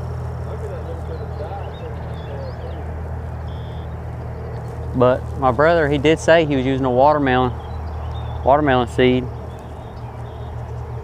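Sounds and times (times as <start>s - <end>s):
low motor-like hum: 0.0s - 11.0s
outdoor background noise: 0.0s - 11.0s.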